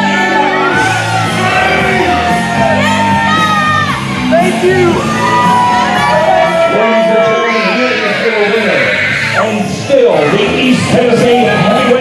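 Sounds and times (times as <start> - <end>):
loud music with bass line: 0.0 - 12.0
voices shouting and whooping: 0.0 - 12.0.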